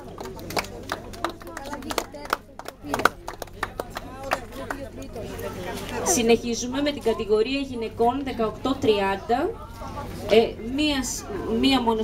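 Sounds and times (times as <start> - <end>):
crowd hand claps: 0.0 - 5.2
voices murmuring: 0.0 - 12.0.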